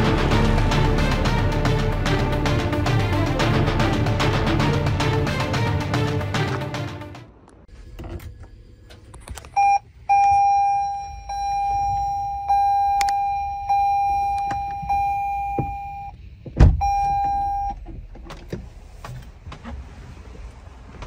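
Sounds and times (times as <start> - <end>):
dashboard warning chime: 9.6 - 16.2, 16.8 - 17.8.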